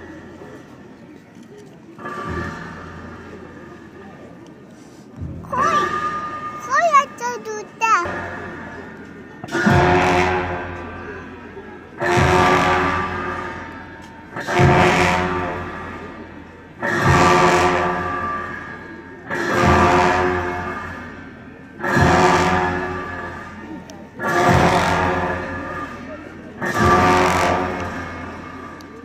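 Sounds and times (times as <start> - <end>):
ritual drum and cymbals beating: 19.4 - 28.8.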